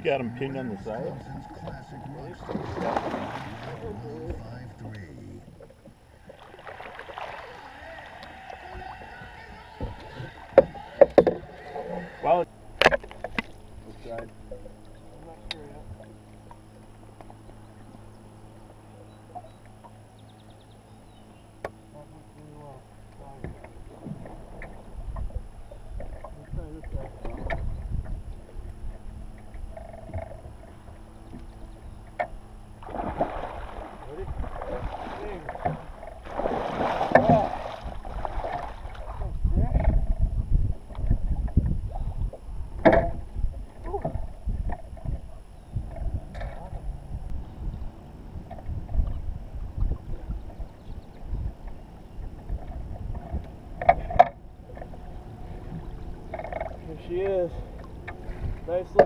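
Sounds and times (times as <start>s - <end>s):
low rumble: 0.0s - 59.0s
fish splashing in water: 2.4s - 4.0s, 6.2s - 9.4s, 32.8s - 39.4s.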